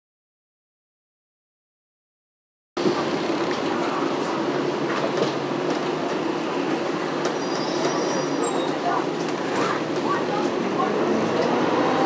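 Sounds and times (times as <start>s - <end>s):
bus engine hum: 2.8s - 12.0s.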